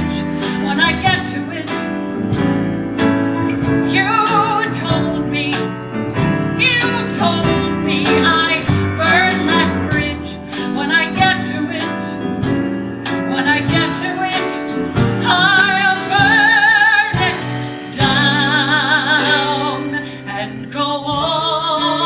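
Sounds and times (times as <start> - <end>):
woman singing with vibrato: 0.0 - 2.0, 3.9 - 5.8, 6.6 - 12.2, 13.3 - 22.0
live band playing slow song: 0.0 - 22.0.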